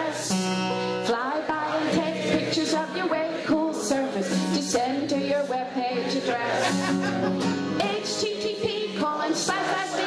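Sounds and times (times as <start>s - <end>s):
woman singing: 0.0s - 0.4s, 1.0s - 6.7s, 7.8s - 10.0s
acoustic guitar: 0.0s - 10.0s.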